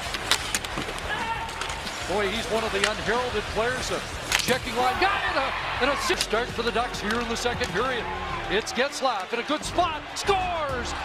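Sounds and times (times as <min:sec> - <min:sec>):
sticks and puck clacking: 0:00.0 - 0:05.1, 0:05.8 - 0:09.4
crowd hum: 0:00.0 - 0:11.0.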